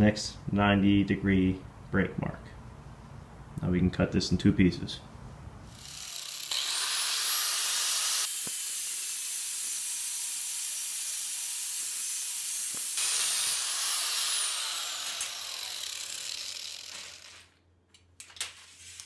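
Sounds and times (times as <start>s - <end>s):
angle grinder cutting steel: 5.7s - 17.5s.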